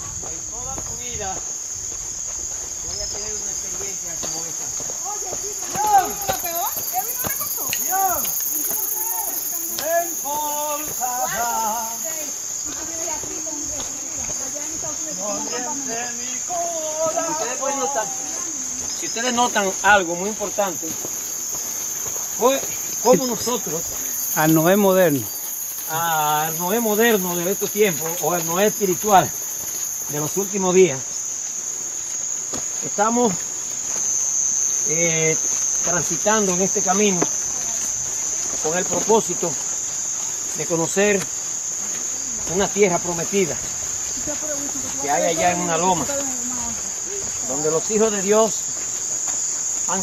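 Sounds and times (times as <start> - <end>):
crickets chirping: 0.0 - 50.0
night insects chorus: 0.0 - 50.0.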